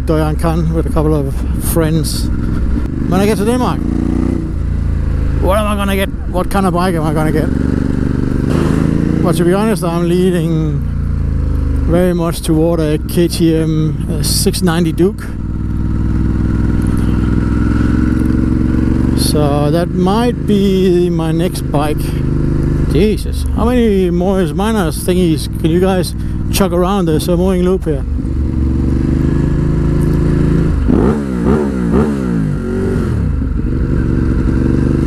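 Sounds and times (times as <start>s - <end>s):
motorcycle engine running: 0.0s - 35.0s.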